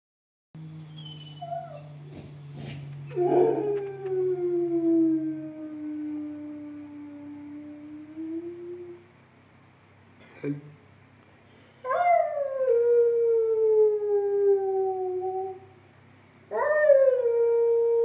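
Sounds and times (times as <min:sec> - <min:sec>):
dog whining and howling: 0:00.8 - 0:02.3, 0:03.1 - 0:07.6.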